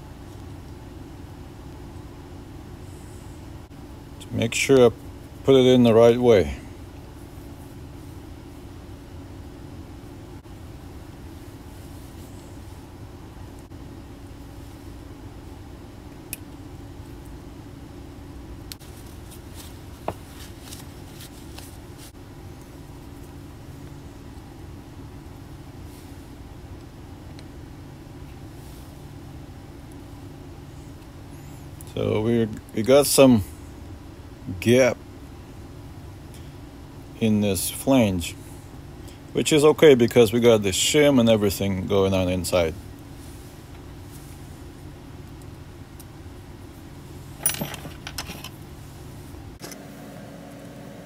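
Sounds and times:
low machine hum: 0.0 - 51.0.

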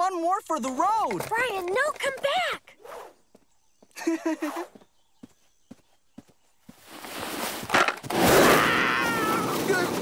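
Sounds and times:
cartoon footsteps: 0.6 - 2.7
skateboard rolling rush: 7.2 - 10.0.

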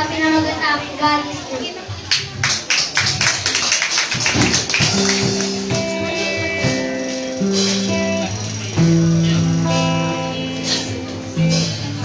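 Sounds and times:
quick percussive beat: 2.1 - 10.0
held chords: 4.6 - 12.0.

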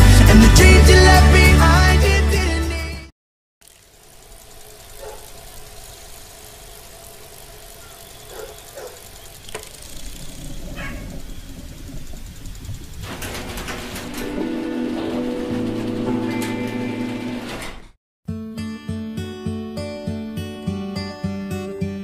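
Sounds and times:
low rumble of machinery: 3.6 - 17.9
short knocks and clatters: 12.0 - 17.9.

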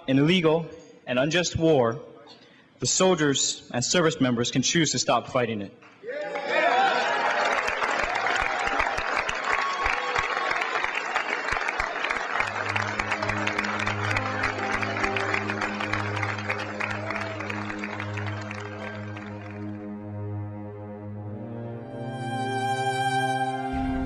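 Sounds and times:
audience applauding: 6.1 - 20.0
music with low sustained notes: 12.4 - 24.0.

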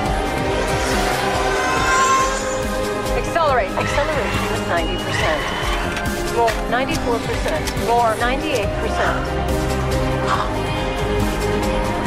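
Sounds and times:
epic orchestral music: 0.0 - 12.0.

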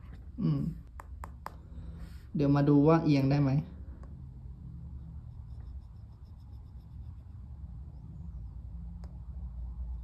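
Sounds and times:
low steady hum: 0.0 - 10.0
stylus scratching on glass screen: 4.7 - 9.3.

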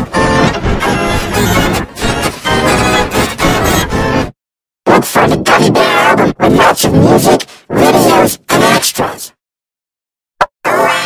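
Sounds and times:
distorted pitch-shifted vocals: 4.9 - 9.4, 10.6 - 11.0.

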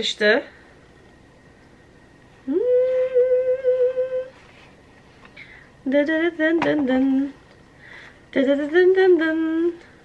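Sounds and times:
woman humming: 2.4 - 4.4.

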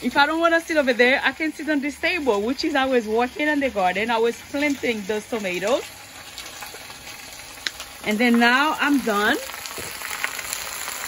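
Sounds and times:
spinach sizzling in pot: 0.0 - 11.0.

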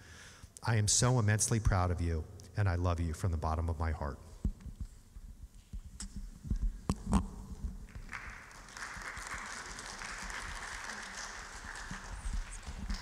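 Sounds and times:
audience applauding: 7.9 - 13.0.

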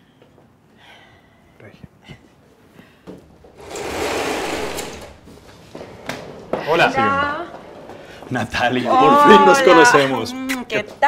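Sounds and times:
door opening with rattling rush: 3.6 - 5.4.

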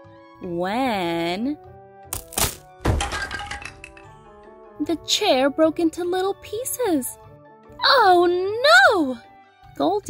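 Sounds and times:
soft background music: 0.0 - 10.0
wooden chair cracking and breaking: 2.1 - 4.0.

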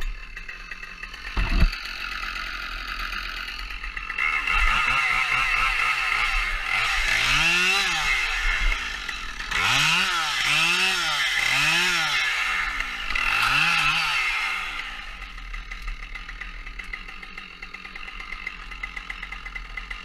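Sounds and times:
chainsaw revving and idling: 0.0 - 20.0.

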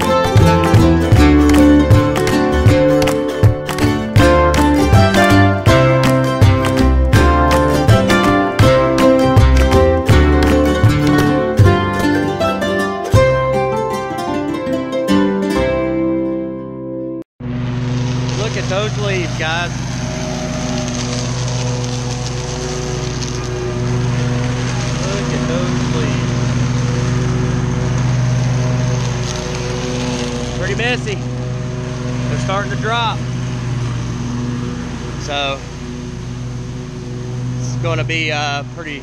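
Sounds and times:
lawn mower engine running: 0.0 - 15.4, 17.4 - 39.0
guitar music: 0.0 - 39.0
man talking: 18.3 - 19.8, 24.8 - 26.4, 30.6 - 31.3, 32.2 - 33.2, 35.2 - 35.7, 37.6 - 39.0.

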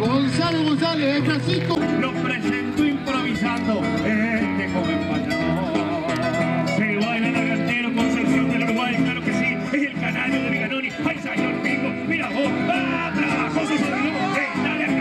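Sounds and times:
acoustic guitar playing: 0.0 - 15.0
person singing through loudspeaker: 1.8 - 15.0.

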